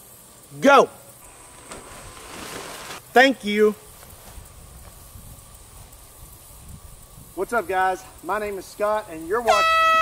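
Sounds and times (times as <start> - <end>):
faint outdoor hiss: 0.0 - 10.0.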